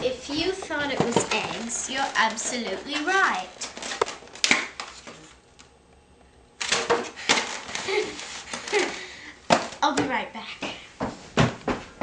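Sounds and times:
girl's wordless voice: 0.0s - 3.7s, 9.8s - 11.0s
footsteps on wooden floor: 10.0s - 12.0s.

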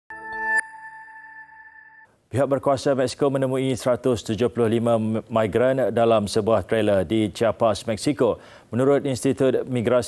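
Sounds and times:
bright chime ringing: 0.1s - 2.1s
electronic chord: 0.1s - 2.1s.

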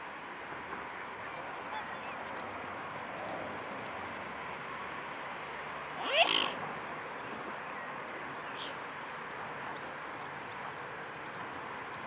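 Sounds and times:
short rising animal call: 6.0s - 6.6s.

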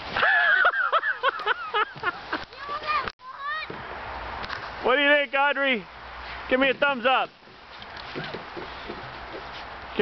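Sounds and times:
child squealing and yelping: 2.6s - 3.7s.

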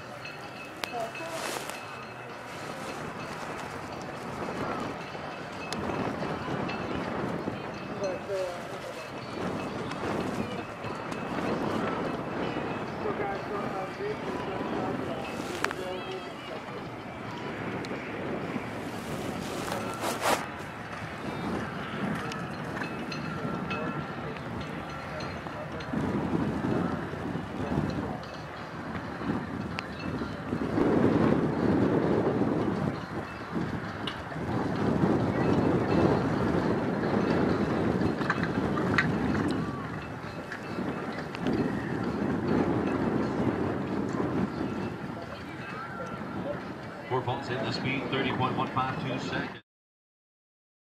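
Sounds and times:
wind on microphone: 0.0s - 49.6s.

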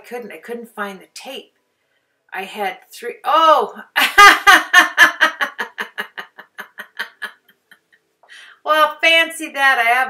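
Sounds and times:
woman laughing: 4.0s - 8.0s.

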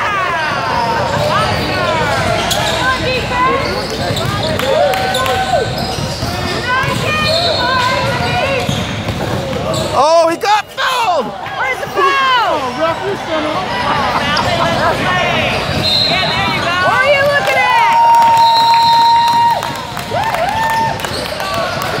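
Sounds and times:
sneakers squeaking on floor: 0.6s - 10.4s, 12.4s - 17.6s
basketball bouncing: 3.8s - 9.9s, 14.4s - 17.7s.

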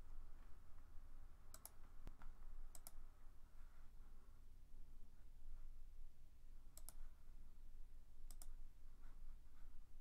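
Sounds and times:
low steady hum: 0.0s - 10.0s
computer mouse button clicks: 6.8s - 7.0s, 8.3s - 8.5s.

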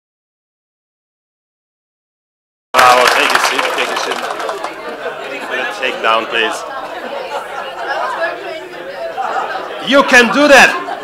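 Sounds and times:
overlapping chatter of people: 2.8s - 11.0s.

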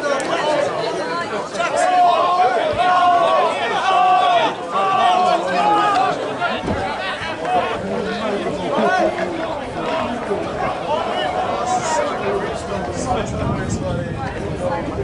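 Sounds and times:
people shouting and chattering: 0.0s - 15.0s.

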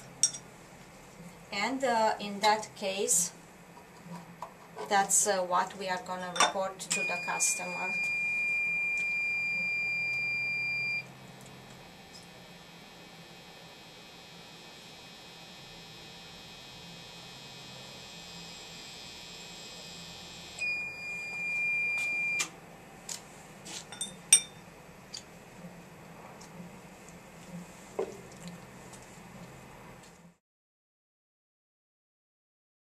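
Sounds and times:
faint electrical hum: 0.0s - 30.4s
high electronic beep: 6.9s - 11.1s, 20.6s - 22.4s
clicks and glass clinks: 23.9s - 24.6s.

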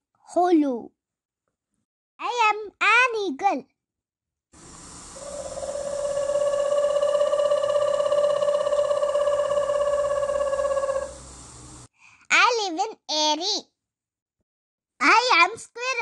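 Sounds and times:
background hiss: 4.6s - 11.9s
eagle trilling call: 5.1s - 11.3s.

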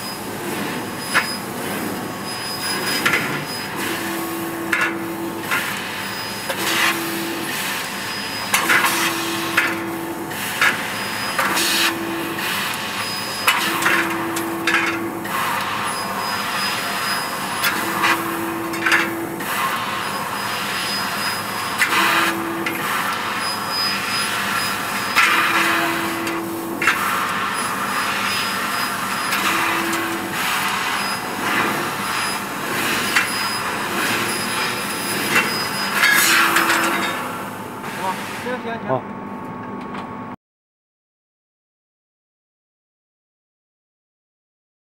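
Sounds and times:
laser cutter hissing: 0.0s - 38.8s.

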